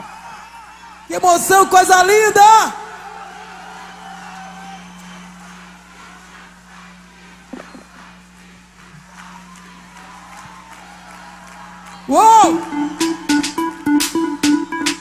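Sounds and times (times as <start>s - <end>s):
faint crowd ambience: 0.0s - 15.0s
sound system low hum: 3.6s - 15.0s.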